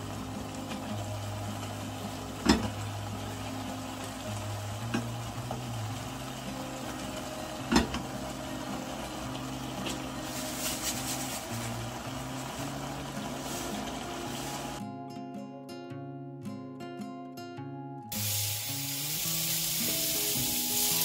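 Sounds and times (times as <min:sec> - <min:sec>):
food sizzling in a pan: 0:00.0 - 0:14.8, 0:18.1 - 0:21.0.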